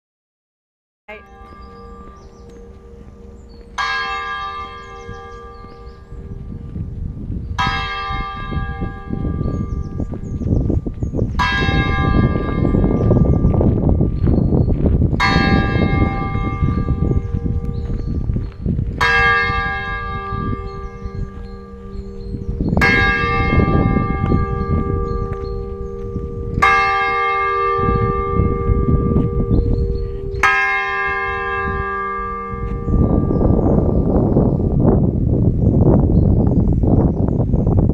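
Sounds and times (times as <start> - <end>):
church bell tolling: 1.1 - 37.4
low rumble: 1.5 - 30.6.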